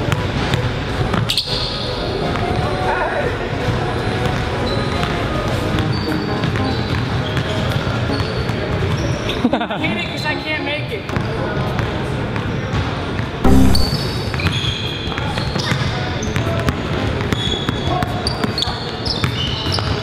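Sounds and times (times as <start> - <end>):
background music: 5.3 - 8.2, 9.7 - 12.2, 13.5 - 14.1.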